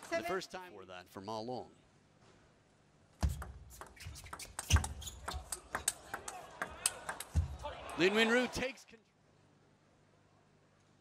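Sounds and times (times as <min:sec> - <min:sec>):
table tennis ball clicking: 0:03.2 - 0:07.5.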